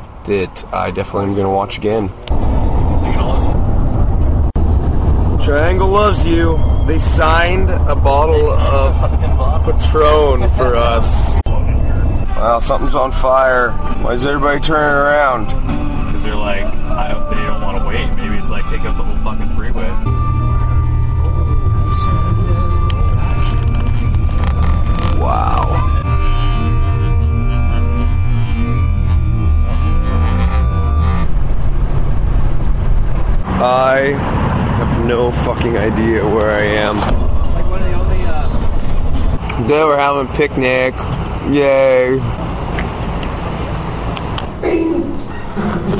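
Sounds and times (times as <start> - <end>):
road and engine rumble in a van: 0.0 - 45.9
thin high whine: 2.4 - 34.0
faint voices: 21.2 - 30.9.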